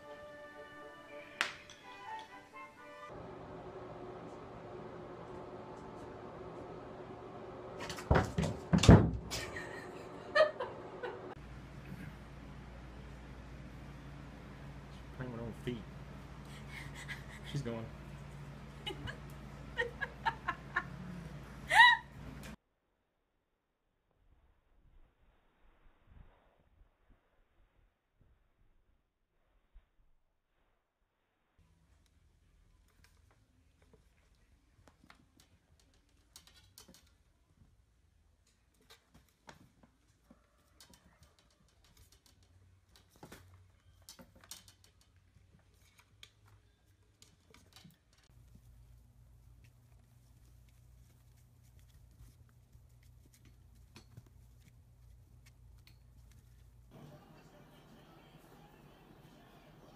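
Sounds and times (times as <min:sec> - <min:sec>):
kittens tapping and rustling on carpet: 0:38.4 - 0:57.0.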